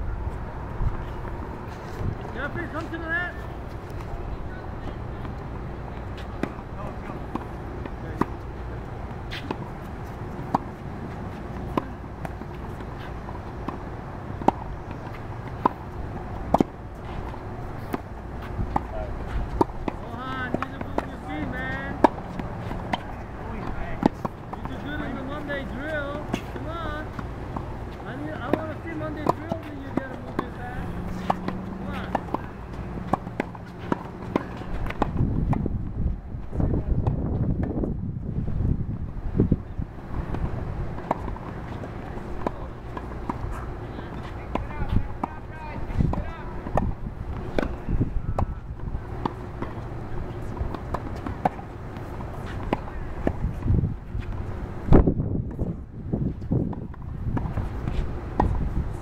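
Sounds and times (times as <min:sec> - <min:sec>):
low outdoor rumble: 0:00.0 - 0:59.0
tennis rackets striking balls: 0:05.2 - 0:35.7, 0:40.1 - 0:58.7.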